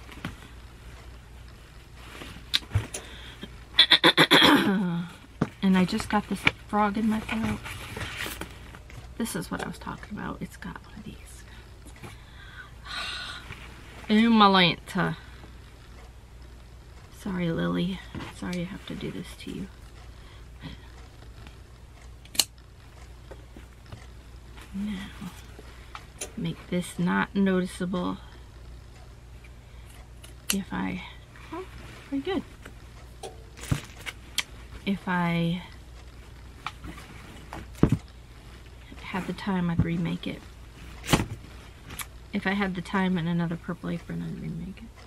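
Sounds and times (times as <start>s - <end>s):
low steady hum: 0.0s - 45.0s.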